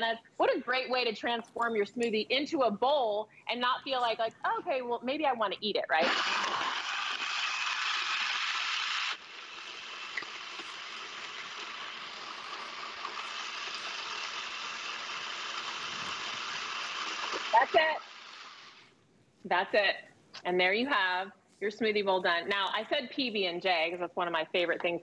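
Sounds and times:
blender running: 6.0s - 18.8s.

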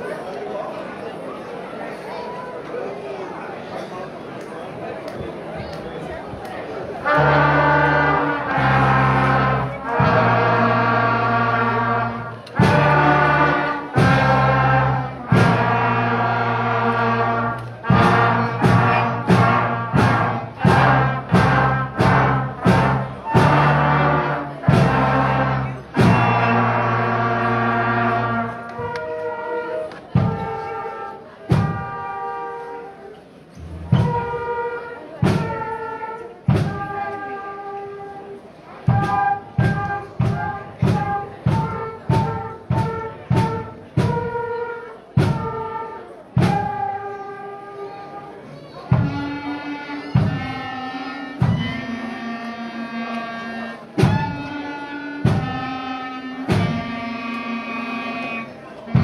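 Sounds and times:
school band of flutes and brass: 5.6s - 59.0s.

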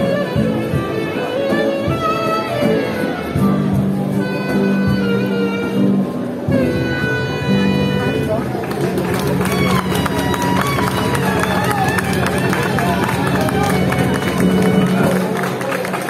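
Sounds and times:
crowd voices: 0.0s - 16.0s
guitar: 0.0s - 16.0s
street musicians playing: 0.0s - 16.0s.

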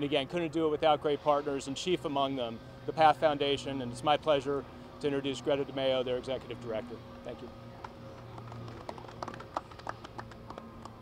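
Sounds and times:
people clapping lightly: 7.8s - 11.0s.

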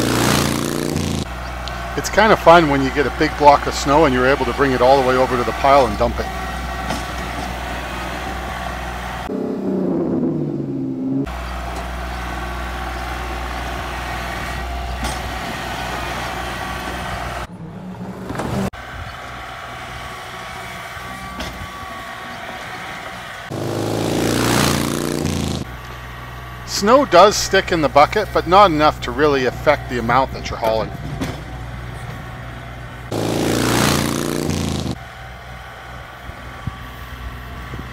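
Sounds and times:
tractor diesel engine running: 0.0s - 37.9s.

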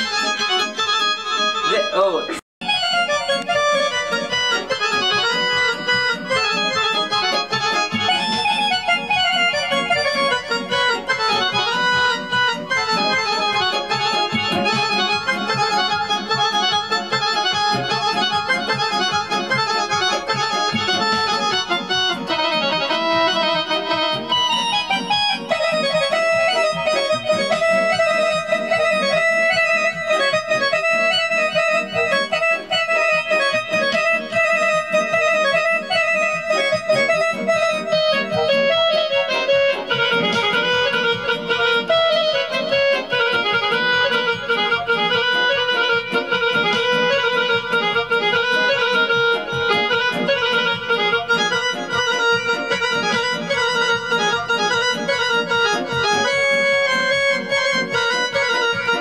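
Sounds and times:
electronic keyboard melody: 0.0s - 59.0s.

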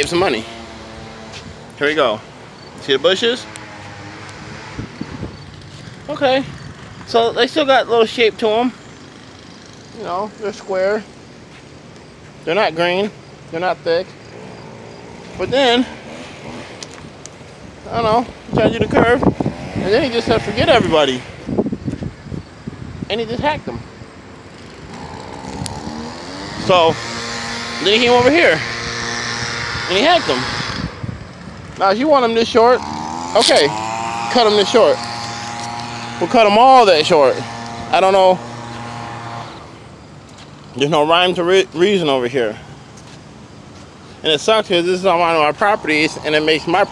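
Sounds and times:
wind buffeting microphone: 0.0s - 8.6s, 15.3s - 40.3s
motor engine running: 24.6s - 40.0s.

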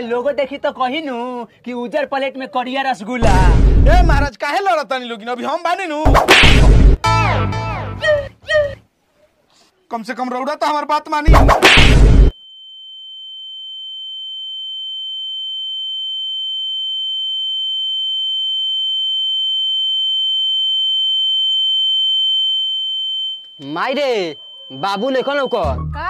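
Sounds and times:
high-pitched ringing tone: 12.3s - 26.0s.

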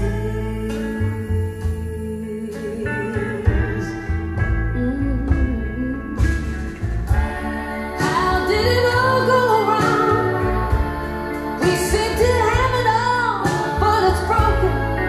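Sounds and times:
slow song over loudspeakers: 0.0s - 15.0s.

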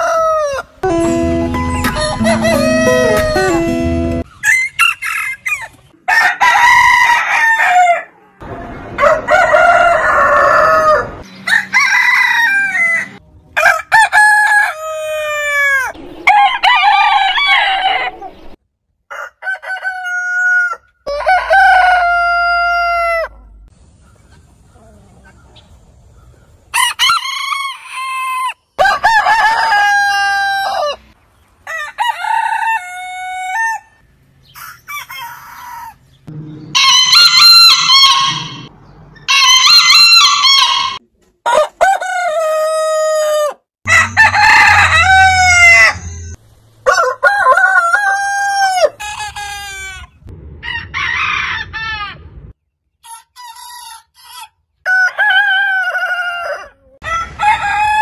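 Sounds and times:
roosters crowing: 0.0s - 0.8s, 1.8s - 23.7s, 26.7s - 52.5s, 53.1s - 58.0s.

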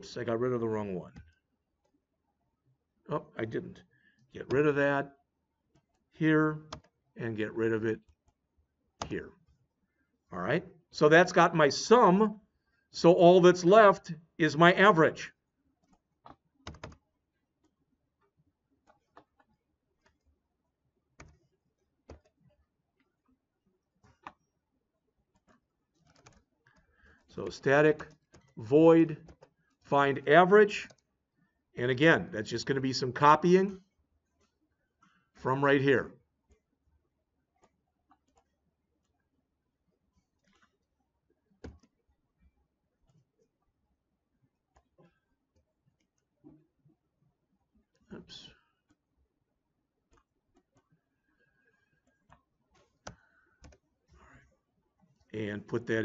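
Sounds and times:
computer keyboard and mouse clicks: 5.7s - 7.0s, 15.8s - 17.0s, 18.8s - 20.4s, 21.1s - 22.6s, 24.0s - 24.6s, 25.3s - 28.6s, 29.2s - 29.8s, 30.8s - 31.1s, 37.6s - 39.1s, 40.3s - 40.9s, 41.5s - 42.0s, 51.7s - 54.5s
computer keyboard keystrokes: 15.8s - 17.0s, 21.2s - 21.5s, 25.4s - 26.8s, 52.7s - 53.8s.

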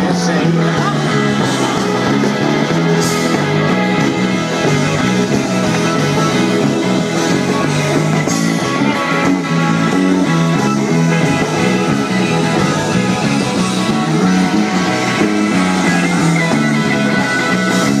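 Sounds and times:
electric guitar: 0.0s - 18.0s
stepping bass line: 0.0s - 18.0s.

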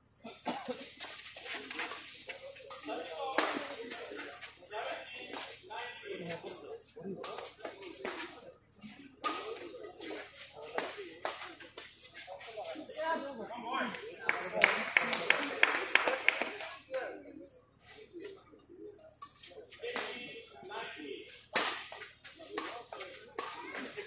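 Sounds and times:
spectators' voices and calls: 0.4s - 24.0s
racket hitting shuttlecock: 21.5s - 24.0s.

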